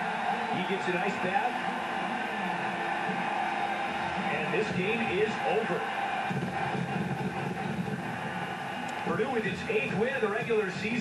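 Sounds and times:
stadium crowd noise: 0:00.0 - 0:11.0.

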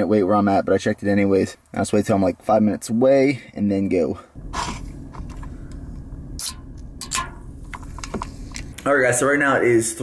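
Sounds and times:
car cabin rumble: 0:04.4 - 0:08.9.

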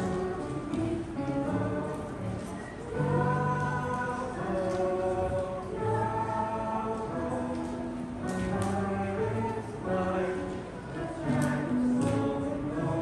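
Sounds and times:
group of voices singing: 0:00.0 - 0:13.0.

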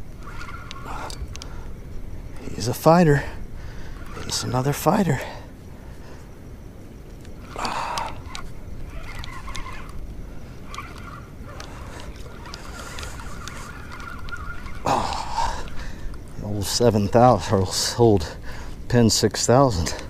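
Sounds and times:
faint whine: 0:00.0 - 0:20.0
fishing reel handling clicks: 0:00.1 - 0:02.9, 0:03.8 - 0:05.0, 0:07.2 - 0:16.4.

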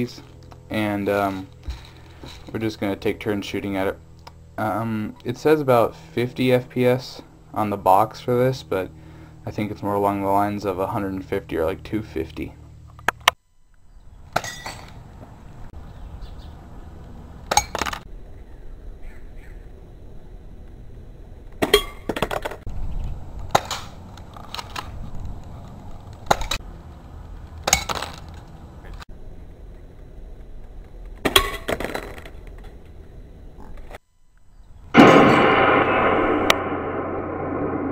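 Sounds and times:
gong-like ringing tone: 0:35.0 - 0:37.9.

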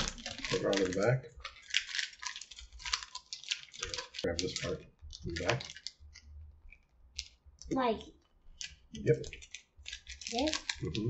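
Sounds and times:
plastic candy wrapper crinkling: 0:00.0 - 0:11.0.

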